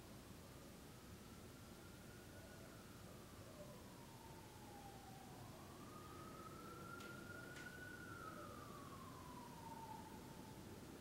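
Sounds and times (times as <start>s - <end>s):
emergency siren wailing: 1.2s - 11.0s.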